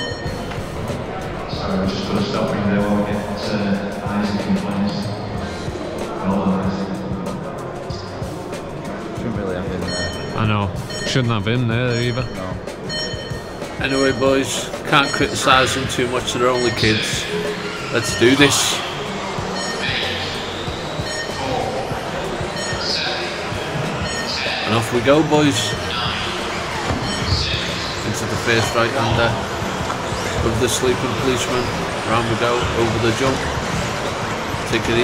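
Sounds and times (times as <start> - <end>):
background music: 0.0 - 35.0
indistinct talking: 0.0 - 35.0
indoor hall background noise: 0.0 - 35.0.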